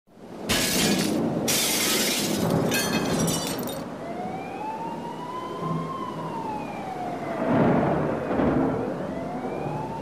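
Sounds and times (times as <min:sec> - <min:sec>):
glass shattering: 0:00.5 - 0:03.8.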